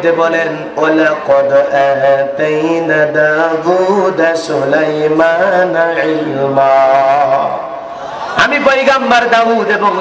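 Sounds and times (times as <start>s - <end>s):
man chanting sermon: 0.0s - 7.8s, 8.4s - 10.0s.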